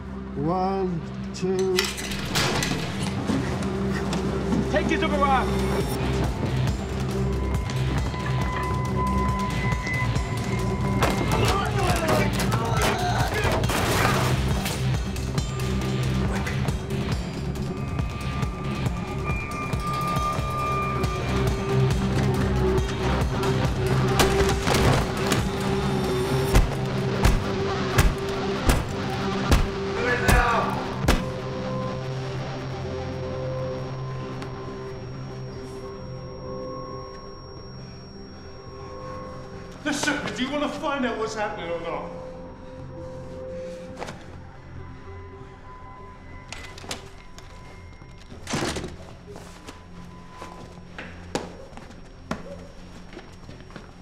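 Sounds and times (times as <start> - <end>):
low droning film score: 0.0 - 54.0.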